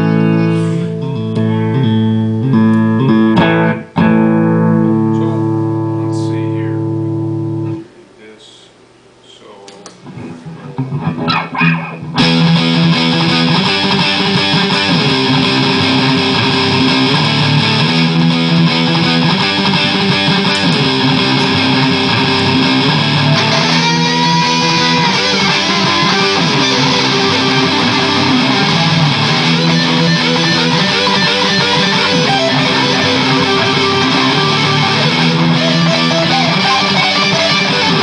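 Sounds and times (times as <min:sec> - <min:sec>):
electric guitar through amp: 0:00.0 - 0:07.9, 0:09.8 - 0:38.0.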